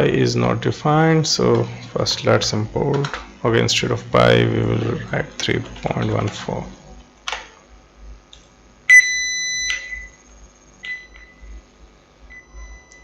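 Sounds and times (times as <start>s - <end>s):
high sine tone: 0.0s - 13.0s.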